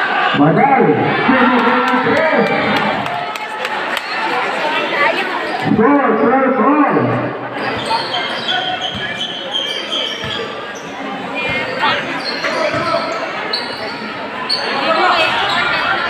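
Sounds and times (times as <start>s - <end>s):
crowd chatter and shouts: 0.0s - 16.0s
basketball bouncing on court: 8.8s - 9.2s, 12.7s - 13.1s.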